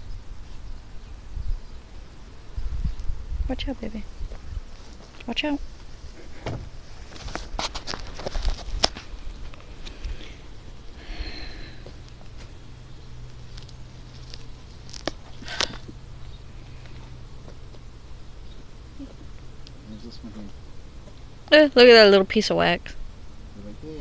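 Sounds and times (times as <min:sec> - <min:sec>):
faint low hum: 0:00.0 - 0:24.0
footsteps on dry ground: 0:04.3 - 0:10.2
clicks and knocks on wooden hive: 0:06.2 - 0:10.1.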